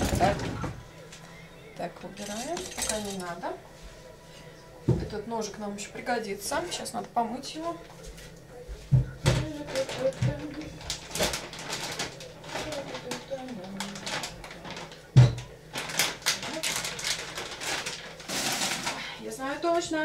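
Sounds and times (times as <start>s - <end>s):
utensils and dishes clattering: 0.0s - 1.2s, 1.9s - 3.6s, 9.2s - 19.2s.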